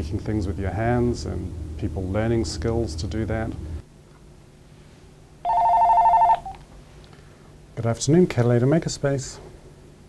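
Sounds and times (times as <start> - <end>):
two-tone electronic telephone ring: 5.4 - 6.6.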